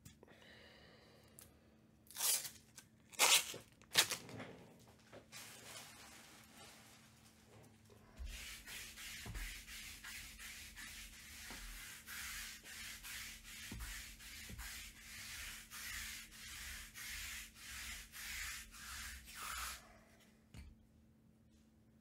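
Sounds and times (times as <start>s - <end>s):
roller rubbing over mat: 8.2s - 19.8s.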